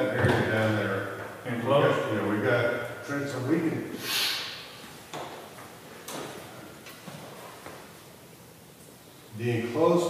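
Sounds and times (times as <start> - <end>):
short hiss: 4.0 - 4.8.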